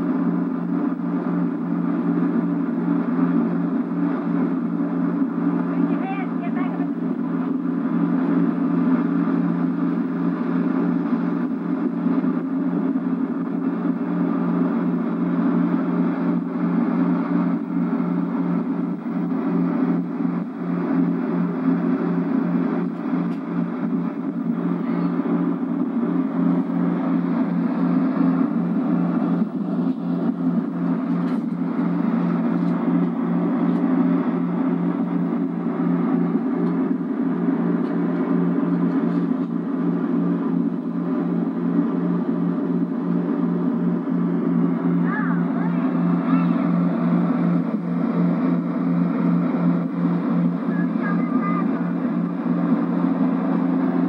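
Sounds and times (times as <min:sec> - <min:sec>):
boat motor running: 0:00.0 - 0:54.0.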